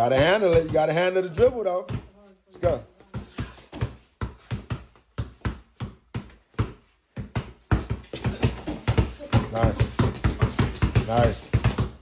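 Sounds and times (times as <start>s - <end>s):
basketballs bouncing on concrete: 0.0s - 12.0s.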